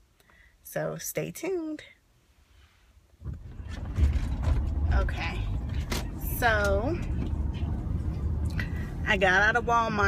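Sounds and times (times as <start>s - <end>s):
car interior rumble: 3.1s - 10.0s.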